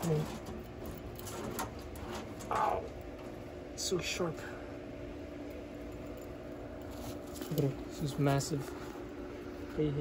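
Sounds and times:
steady hum: 0.0s - 10.0s
light clicks and rustles: 5.9s - 9.0s.

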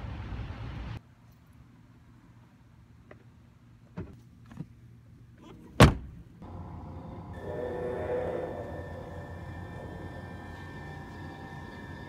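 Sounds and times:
steady low hum: 6.4s - 12.0s
sustained droning tones: 6.4s - 12.0s.

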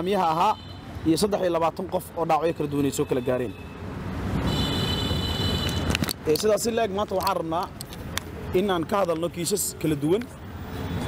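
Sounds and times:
person reading aloud: 6.2s - 7.8s, 8.4s - 10.4s.

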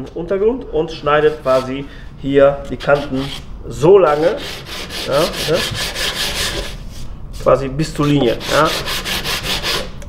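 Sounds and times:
sandpaper rasping on block: 2.8s - 3.4s, 4.0s - 6.9s, 8.3s - 10.0s.

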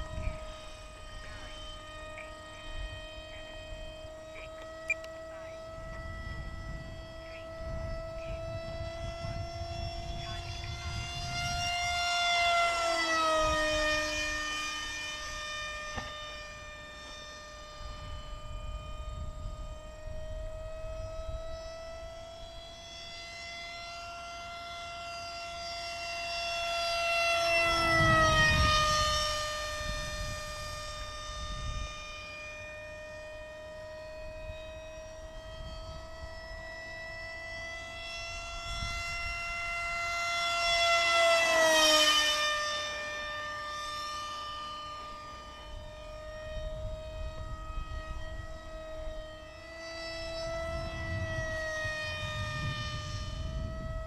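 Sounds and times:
model jet flying past whining: 0.0s - 54.0s.

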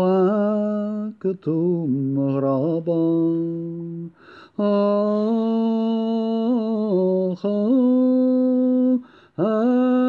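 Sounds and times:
solo voice singing: 0.0s - 10.0s.

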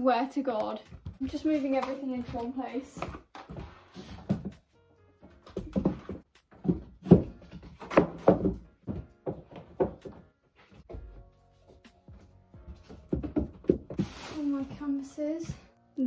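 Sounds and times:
canvases knocking together: 5.4s - 10.3s, 12.7s - 14.4s.

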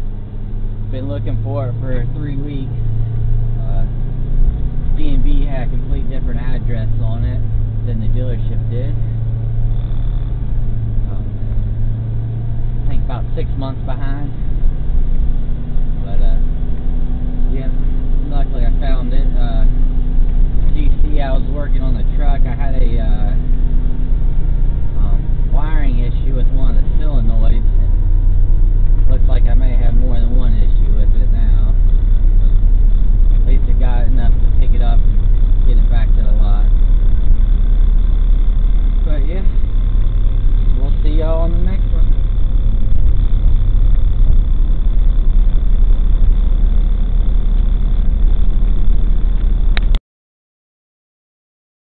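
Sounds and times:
truck engine and road rumble: 0.0s - 50.0s
indistinct voices: 29.0s - 50.0s.

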